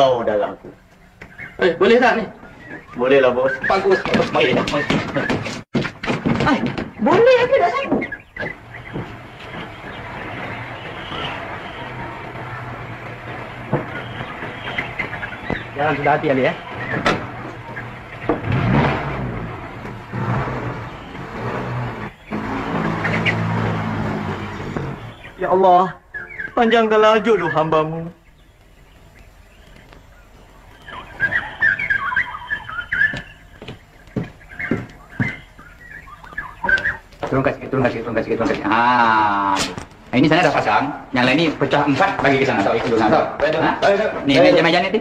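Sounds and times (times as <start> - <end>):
high-pitched chirping calls: 0.0 - 5.6, 6.5 - 39.5
sharp knocks: 3.6 - 25.4, 33.1 - 35.6
film soundtrack hum and hiss: 19.3 - 45.0.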